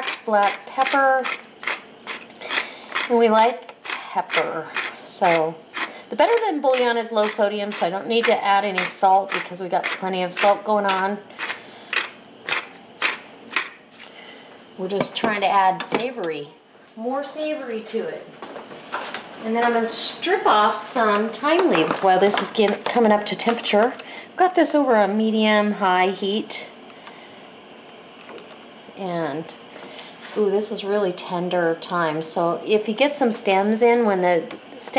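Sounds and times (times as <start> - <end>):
pepper mill grinding: 0.0 - 14.2
gas range hissing: 0.0 - 34.9.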